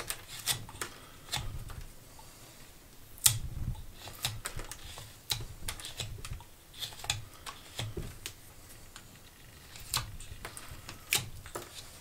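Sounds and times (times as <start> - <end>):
knife slicing wood: 0.0 - 1.5, 4.0 - 8.1.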